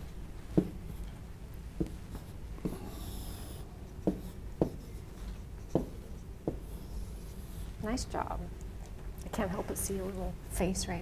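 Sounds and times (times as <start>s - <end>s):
pen tapping on touchscreen: 4.0s - 4.8s.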